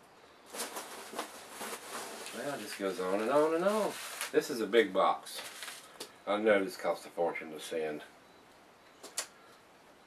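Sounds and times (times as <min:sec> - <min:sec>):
packing material rustling: 0:00.5 - 0:04.6, 0:05.3 - 0:06.0.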